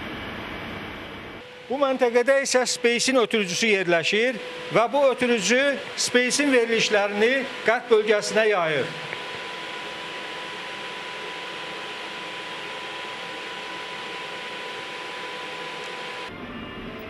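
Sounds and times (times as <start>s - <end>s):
cooling fans hissing: 0.0s - 17.0s.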